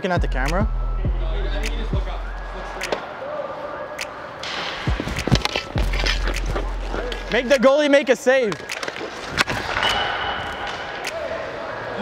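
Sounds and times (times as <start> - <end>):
background music: 0.0 - 12.0
pucks striking boards: 4.4 - 7.6, 8.4 - 11.3
hockey sticks hitting pucks: 4.4 - 11.6.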